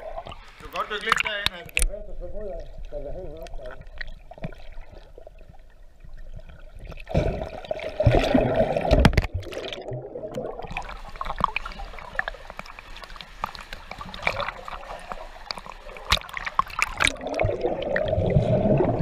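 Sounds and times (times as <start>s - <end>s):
water splashing: 0.0s - 1.9s, 2.5s - 19.0s.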